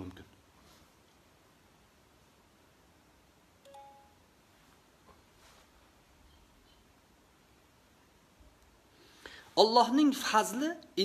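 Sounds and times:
faint electronic chime: 3.6 - 4.4.

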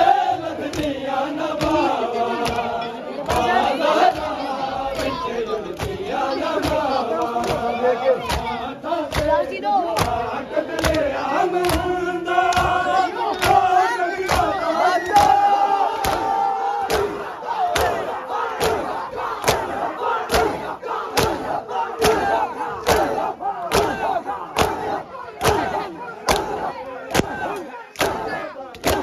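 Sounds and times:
men chanting: 0.0 - 29.0
hands slapping chests: 0.6 - 1.0, 1.6 - 4.3, 5.0 - 9.4, 10.0 - 29.0.

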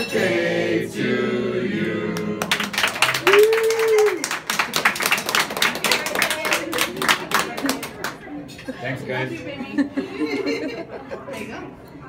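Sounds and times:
group clapping: 1.9 - 8.3.

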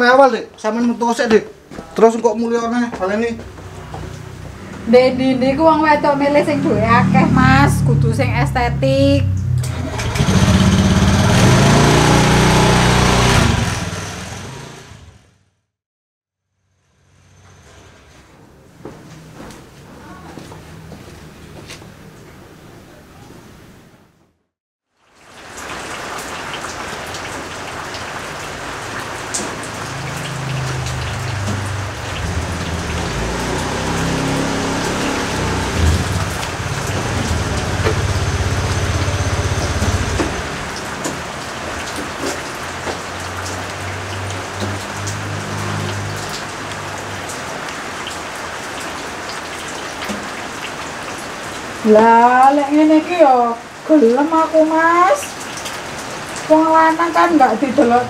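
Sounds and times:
rain hiss: 25.0 - 58.0.

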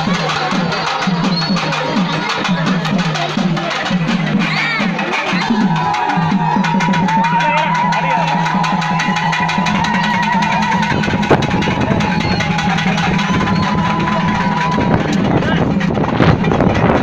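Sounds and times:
fast drumming: 0.0 - 17.0
high wavering melody: 7.9 - 15.4.

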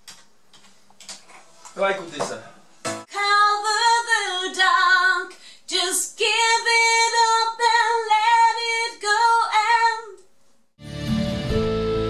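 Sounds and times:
woman singing unaccompanied: 3.1 - 10.2.

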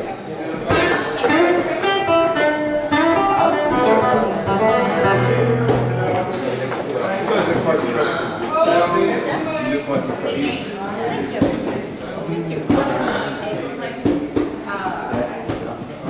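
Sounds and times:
people talking: 0.0 - 16.0
acoustic guitar plucked notes: 0.7 - 8.0.

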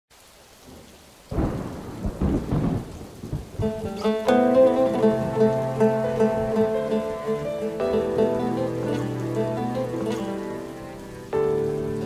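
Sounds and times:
rain patter: 0.1 - 12.0
rolling thunder: 0.7 - 12.0.

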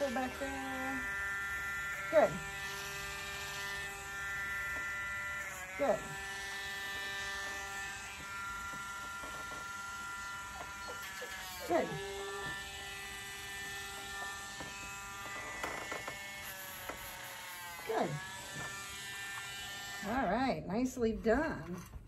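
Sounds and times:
rotary tool whining: 0.0 - 22.0.

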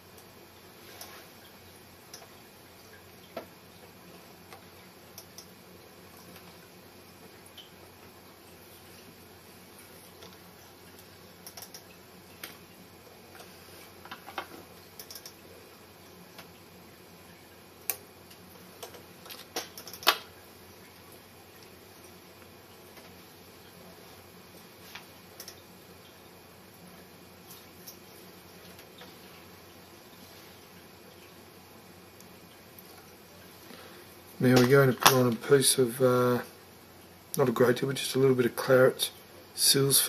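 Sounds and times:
faint steady background noise: 0.0 - 40.0
small clicks and taps of tools: 4.5 - 5.5, 11.4 - 12.6, 13.3 - 15.4, 24.9 - 25.6.

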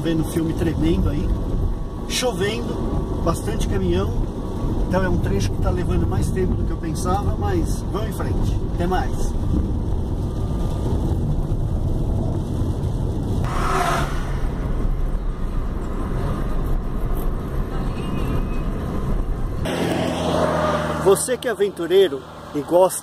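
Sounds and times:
car road and engine rumble: 0.0 - 23.0
rush of noise: 7.6 - 21.2.

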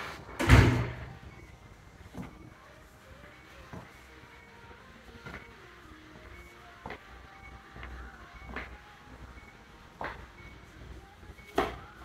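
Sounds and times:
door shutting with thud: 0.3 - 1.2.

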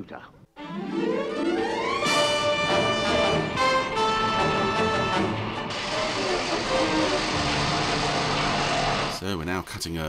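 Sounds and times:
orchestral music: 0.6 - 9.2
boring machine noise: 1.7 - 9.2.

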